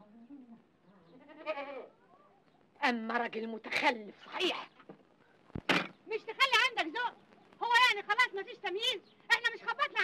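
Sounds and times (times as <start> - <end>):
goat bleating: 1.1 - 2.0.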